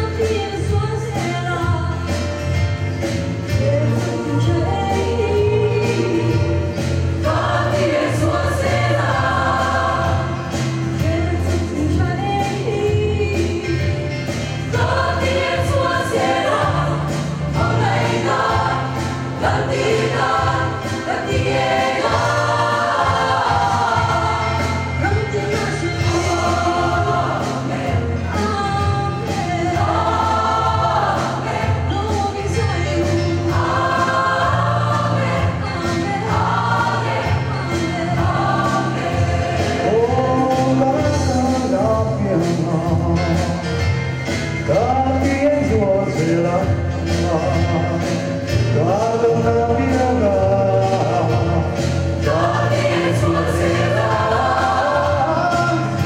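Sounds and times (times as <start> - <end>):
mixed choir singing gospel: 0.0 - 56.0.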